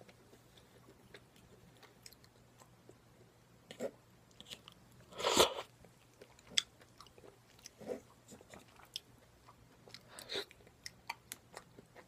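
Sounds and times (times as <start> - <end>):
wet mouth chewing sounds: 0.1 - 12.0.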